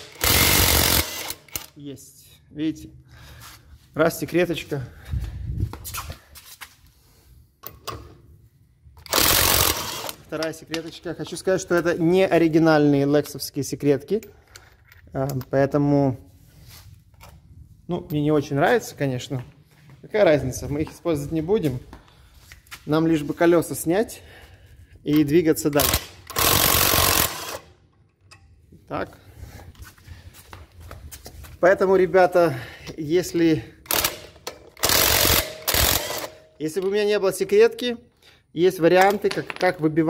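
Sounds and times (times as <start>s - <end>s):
impact wrench hammering: 0.0s - 1.7s, 25.7s - 27.6s, 33.9s - 36.4s.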